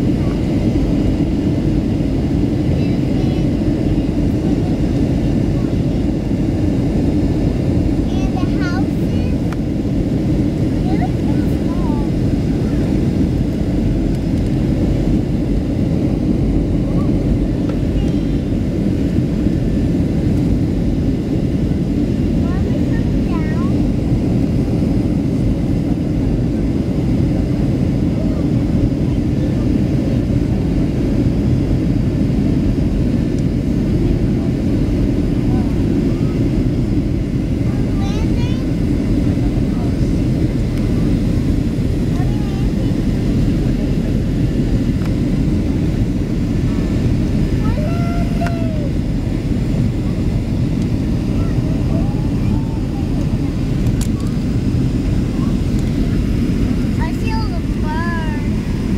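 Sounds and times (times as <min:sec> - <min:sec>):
airliner cabin rumble: 0:00.0 - 0:58.9
faint voices: 0:32.5 - 0:58.9.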